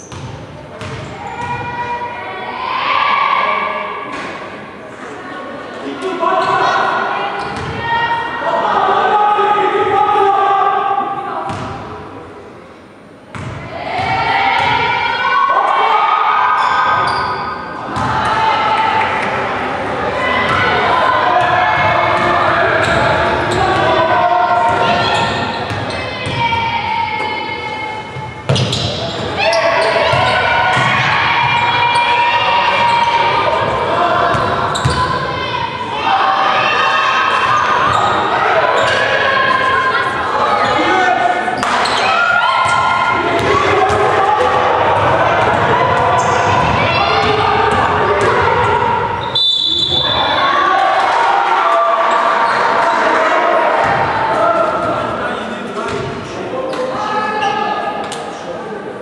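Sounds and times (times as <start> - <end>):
crowd shouting and chanting: 0.0 - 12.2, 13.5 - 59.0
basketball bouncing on wooden court: 0.1 - 1.1, 28.5 - 29.2.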